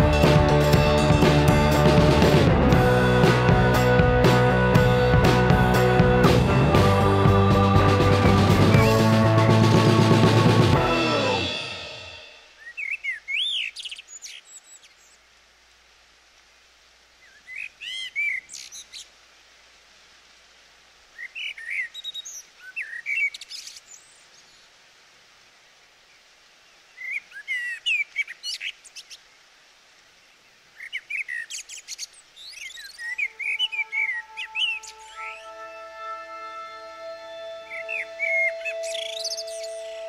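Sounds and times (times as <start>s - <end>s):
sustained music tones: 0.0s - 12.6s, 33.2s - 40.0s
songbird chirping: 0.0s - 15.4s, 17.1s - 19.3s, 21.0s - 40.0s
faint steady hiss: 10.4s - 40.0s.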